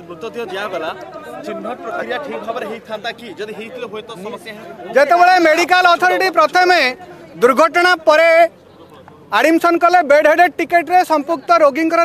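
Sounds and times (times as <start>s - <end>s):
main speaker talking: 0.0s - 12.0s
men talking in a crowd: 0.0s - 12.0s.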